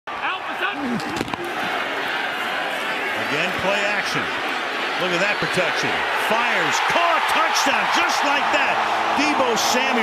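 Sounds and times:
stadium crowd noise: 0.1s - 10.0s.

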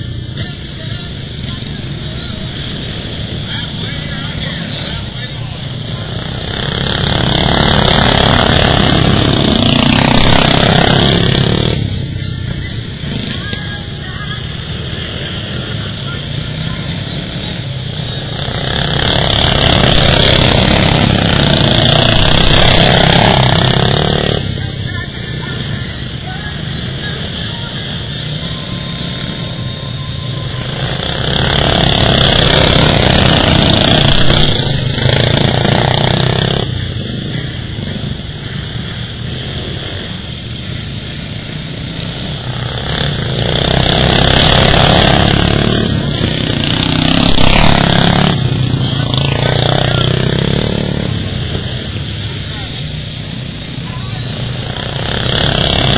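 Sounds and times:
racing lawn mower engines: 0.0s - 55.9s.

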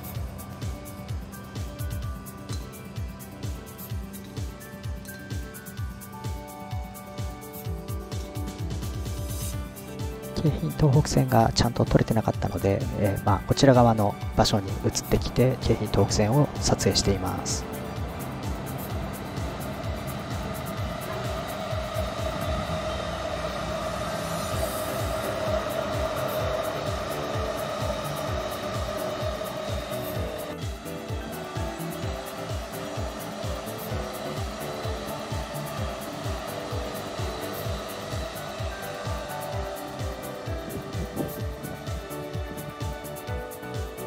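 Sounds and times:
electric train whirring: 0.0s - 44.0s
music with steady beat: 0.0s - 44.0s.

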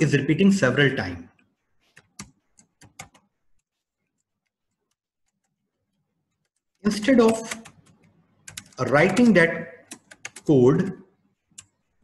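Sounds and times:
keyboard keystrokes: 7.2s - 8.8s.

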